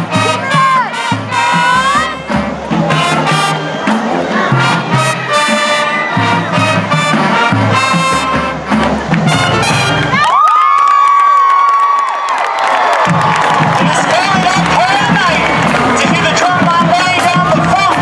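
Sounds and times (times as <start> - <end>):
marching band playing: 0.0 - 10.4, 12.8 - 18.0
crowd cheering and screaming: 0.0 - 18.0.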